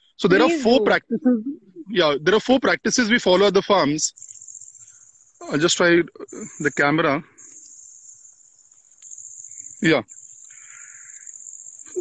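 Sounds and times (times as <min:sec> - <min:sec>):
high-pitched insect drone: 0:03.1 - 0:12.0.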